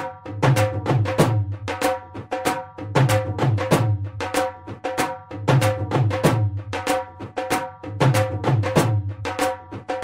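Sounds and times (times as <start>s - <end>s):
bhangra music with dhol beat: 0.0s - 10.0s.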